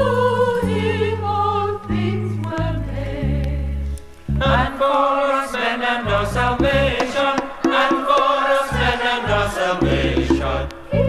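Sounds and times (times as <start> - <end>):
choir singing: 0.0 - 3.7, 4.4 - 11.0
bass notes: 6.2 - 7.0.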